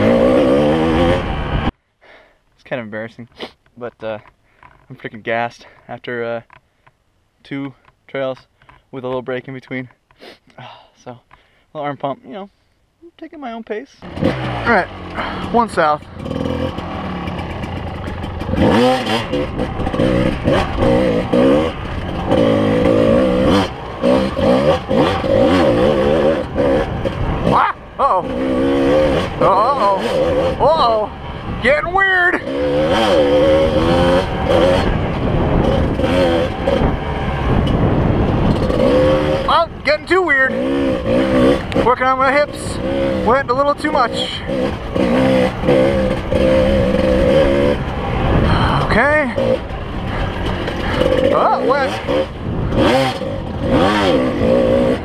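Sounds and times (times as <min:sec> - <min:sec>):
dirt bike engine revving: 0:00.0 - 0:01.7, 0:14.0 - 0:55.0.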